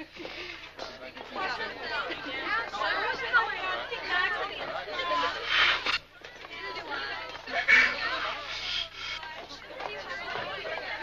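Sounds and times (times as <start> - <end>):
women chattering: 0.0 - 11.0.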